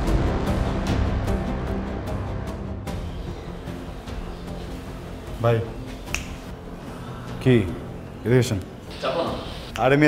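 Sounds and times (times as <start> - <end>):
sharp click: 6.1 - 6.4.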